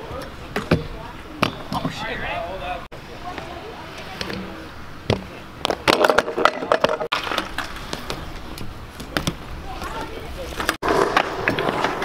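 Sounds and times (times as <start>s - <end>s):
wheels rolling on concrete: 0.0s - 12.0s.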